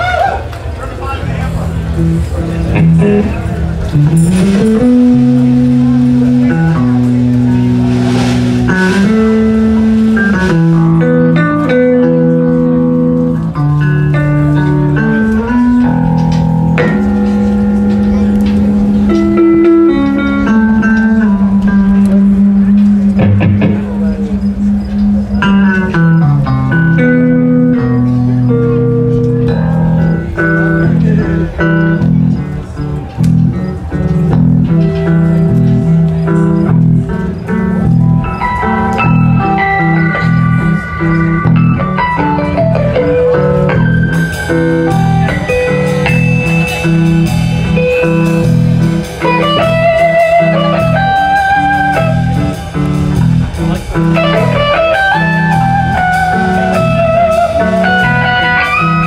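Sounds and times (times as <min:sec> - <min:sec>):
drums: 0:00.0 - 0:59.0
electric guitar: 0:00.0 - 0:59.0.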